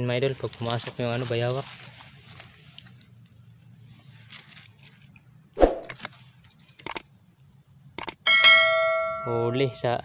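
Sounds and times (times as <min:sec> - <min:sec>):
mouse clicks: 0:08.0 - 0:08.2
bright bell ding: 0:08.3 - 0:10.0.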